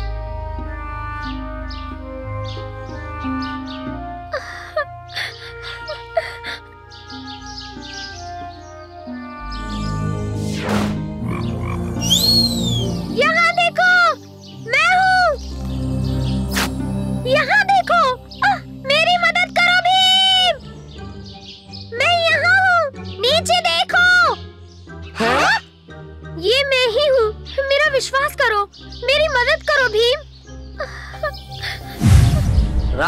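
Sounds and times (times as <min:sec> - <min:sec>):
soft background music: 0:00.0 - 0:33.0
cartoon frog crying: 0:11.2 - 0:13.0, 0:25.2 - 0:25.7.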